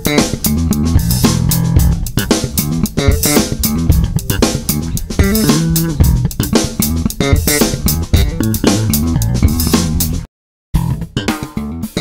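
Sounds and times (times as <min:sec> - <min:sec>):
electric bass plucked notes: 0:00.0 - 0:12.0.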